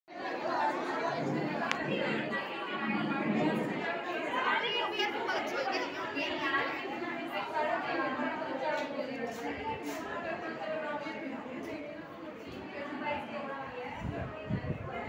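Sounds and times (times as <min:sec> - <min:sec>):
crowd chatter: 0:00.1 - 0:15.0.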